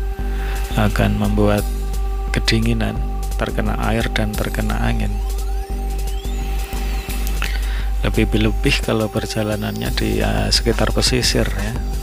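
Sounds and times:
background music with held notes: 0:00.0 - 0:12.0
high tones sweeping: 0:00.0 - 0:12.0.

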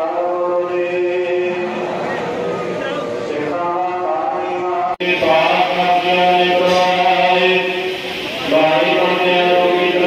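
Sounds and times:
many voices chanting: 0:00.0 - 0:10.0.

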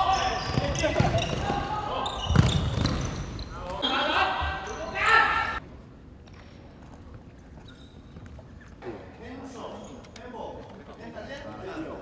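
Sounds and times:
ball bouncing on wooden floor: 0:02.2 - 0:03.1.

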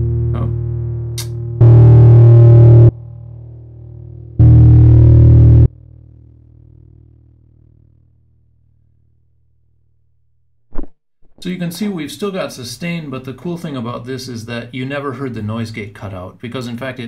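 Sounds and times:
distorted electric guitar chord: 0:00.0 - 0:05.9.

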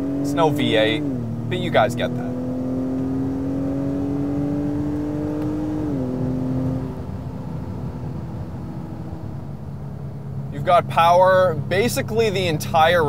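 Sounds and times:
car engine accelerating: 0:00.0 - 0:13.0
road noise: 0:00.0 - 0:13.0.

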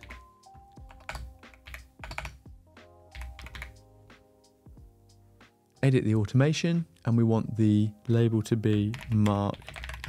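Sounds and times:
computer keyboard typing: 0:00.0 - 0:02.4, 0:03.1 - 0:03.8, 0:08.7 - 0:10.0
soft background music: 0:00.0 - 0:10.0.

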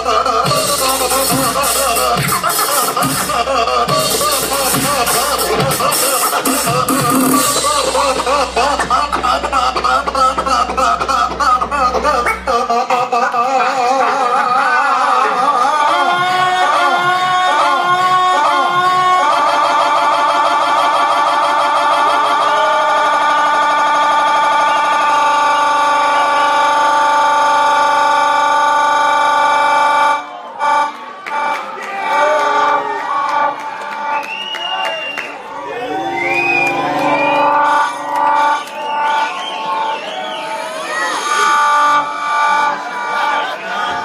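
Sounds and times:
loud held synth chord: 0:06.9 - 0:12.6, 0:35.6 - 0:38.6
swooping siren-like sliding pitches: 0:35.5 - 0:42.2.

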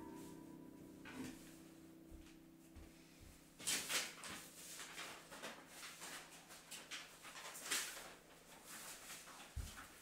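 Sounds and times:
paper rustling and shuffling: 0:03.6 - 0:10.0.

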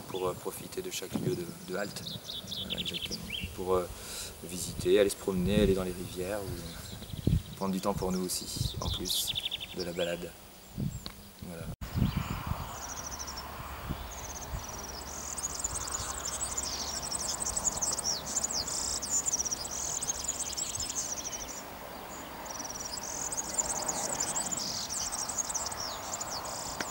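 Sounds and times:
insects chirping: 0:00.0 - 0:26.9.

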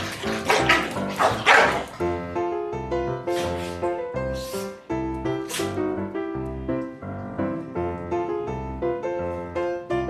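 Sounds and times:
background music: 0:00.0 - 0:10.0
dog barking: 0:00.4 - 0:02.0.

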